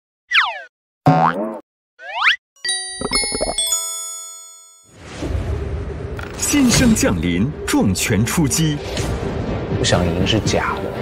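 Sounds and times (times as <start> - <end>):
cartoon boing: 0.3 - 2.4.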